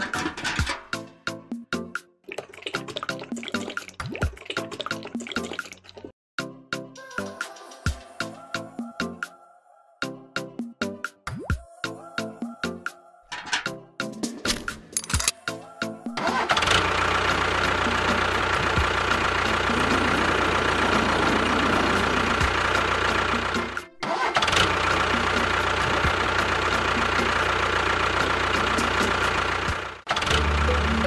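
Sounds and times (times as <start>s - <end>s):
tractor engine running: 0.0s - 1.1s, 16.2s - 31.0s
music: 0.0s - 5.7s, 6.4s - 31.0s.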